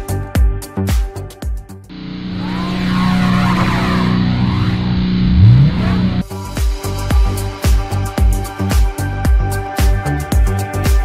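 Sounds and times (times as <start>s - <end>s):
car engine drone: 1.9s - 6.2s.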